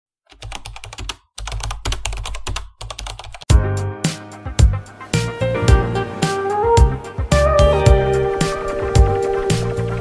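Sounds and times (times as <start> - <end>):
keyboard typing clicks: 0.3 - 3.5
music with strong bass: 3.5 - 10.0.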